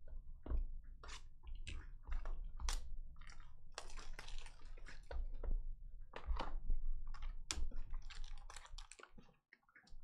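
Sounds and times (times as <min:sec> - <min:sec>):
plastic shrink wrap crinkling and tearing: 0:03.8 - 0:04.8, 0:08.0 - 0:09.1.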